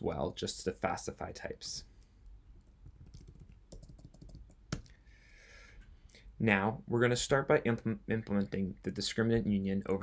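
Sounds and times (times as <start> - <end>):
typing on computer keyboard: 2.6 - 4.9.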